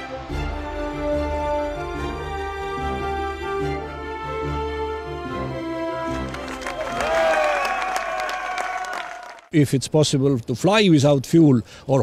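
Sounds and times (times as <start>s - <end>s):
music: 0.0s - 8.1s
crowd applauding: 6.1s - 9.5s.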